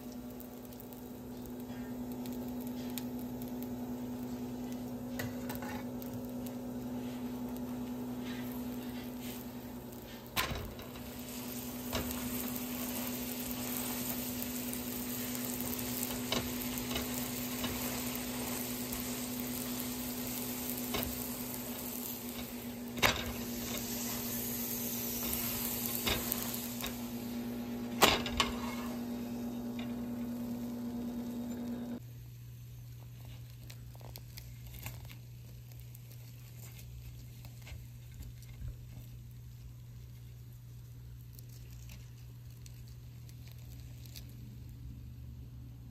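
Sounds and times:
low hum: 0.0s - 32.0s
bread sizzling in oil: 0.0s - 45.9s.

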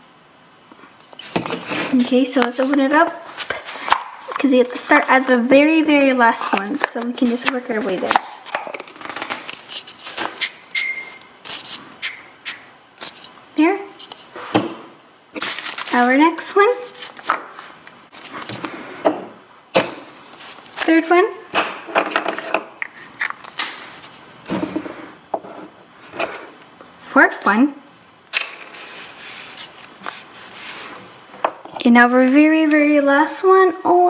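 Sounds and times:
brief high squeak: 10.7s - 11.2s.

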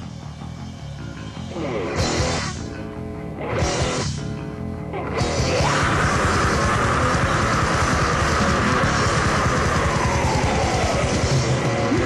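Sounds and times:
death metal music: 0.0s - 12.0s.

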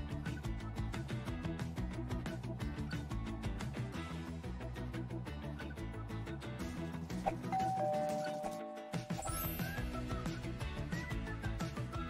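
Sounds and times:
background music: 0.0s - 12.0s
two-note ding-dong chime: 7.5s - 9.5s.

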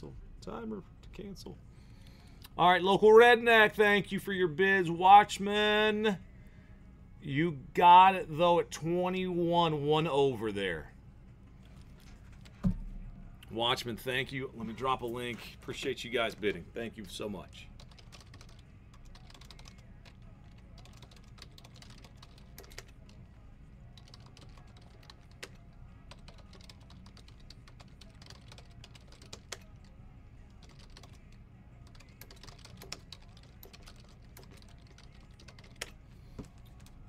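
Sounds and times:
steady low hum: 3.9s - 37.0s
computer keyboard typing: 17.8s - 23.1s, 24.0s - 29.9s, 30.5s - 36.9s.

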